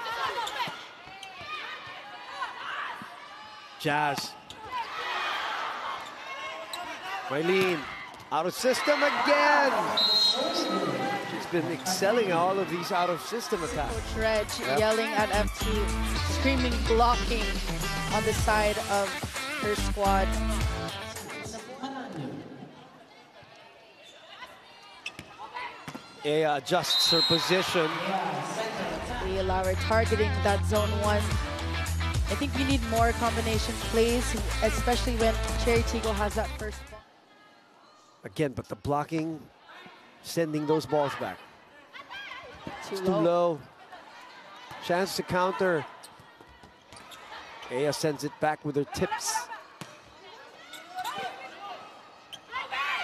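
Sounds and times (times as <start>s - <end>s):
court shoes squeaking: 0.0s - 2.0s, 4.1s - 5.0s, 5.9s - 9.1s, 23.5s - 26.2s, 45.9s - 48.0s, 49.8s - 53.0s
arena crowd hum: 0.0s - 53.0s
players calling: 3.9s - 21.7s.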